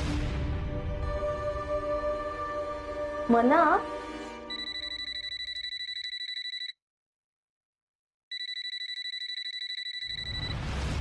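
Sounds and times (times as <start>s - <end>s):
electronic ringer trilling: 4.5s - 6.7s, 8.3s - 10.5s.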